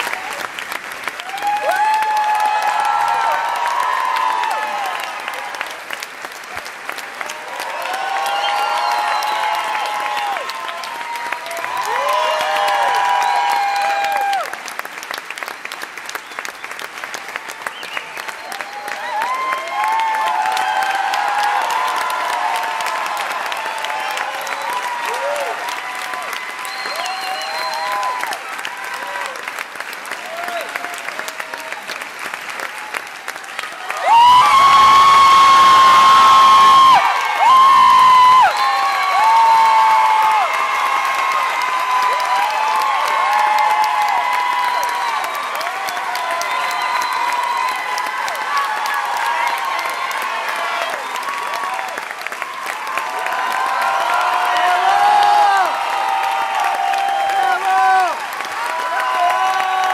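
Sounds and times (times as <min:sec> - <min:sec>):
audience applauding: 0:00.0 - 0:59.9
fans cheering and screaming: 0:00.0 - 0:59.9
close loud scream: 0:01.2 - 0:05.3, 0:07.6 - 0:14.6, 0:33.9 - 0:52.0, 0:52.6 - 0:59.9.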